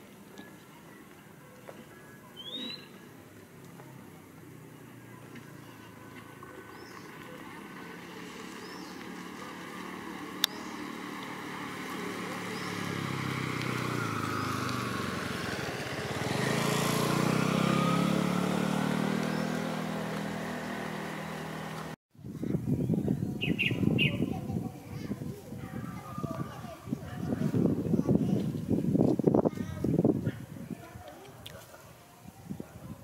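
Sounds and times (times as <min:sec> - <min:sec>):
passing vehicle engine: 0:03.4 - 0:22.0.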